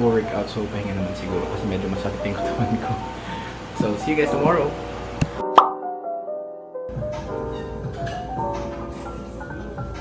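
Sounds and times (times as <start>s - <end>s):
background music: 0.0s - 10.0s
rising pop sound effect: 5.4s - 6.0s.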